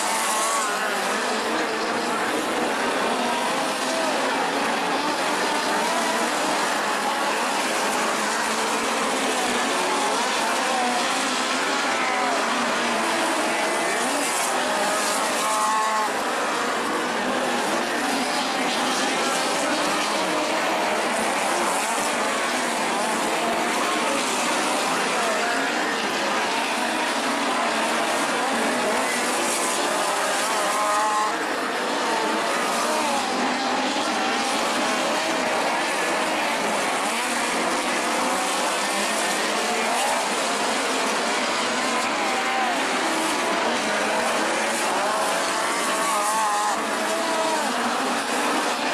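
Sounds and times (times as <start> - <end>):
race car engines: 0.0 - 48.9.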